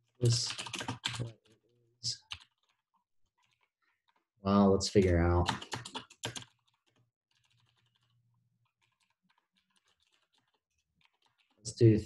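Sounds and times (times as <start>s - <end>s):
faint keyboard typing: 0.0s - 12.0s.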